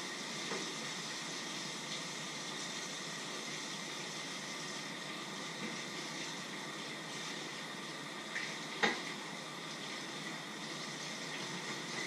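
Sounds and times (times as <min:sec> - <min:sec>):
pots of water hissing on stove: 0:00.0 - 0:12.0.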